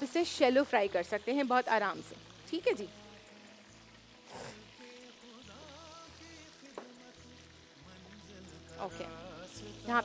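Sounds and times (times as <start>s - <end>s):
food deep-frying in oil: 0.0s - 10.0s
quiet background music: 0.0s - 10.0s.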